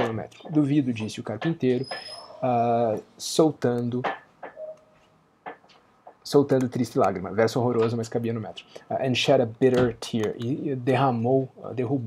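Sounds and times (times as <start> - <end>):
man speaking: 0.0 - 4.1, 6.2 - 12.0.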